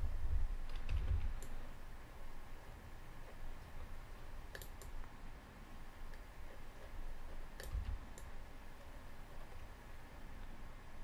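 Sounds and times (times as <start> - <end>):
faint low hum: 0.0 - 11.0
computer mouse clicking: 0.6 - 1.6, 4.5 - 5.1, 6.0 - 9.7.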